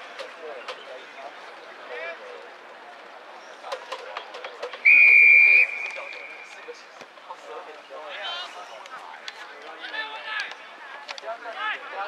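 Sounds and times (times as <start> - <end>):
referee's whistle blast: 4.8 - 6.5.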